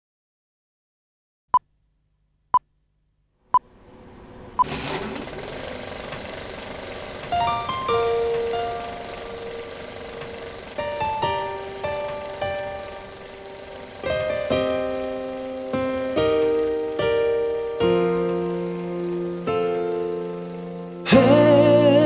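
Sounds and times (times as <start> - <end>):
piano single notes: 7.3 - 22.0.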